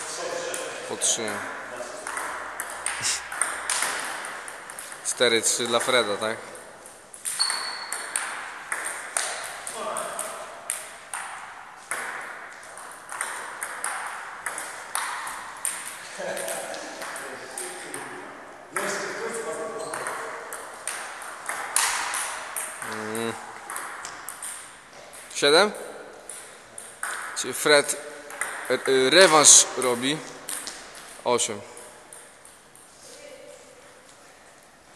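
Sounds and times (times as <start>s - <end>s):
table tennis ball clicking: 2.0s - 18.1s, 19.9s - 27.4s.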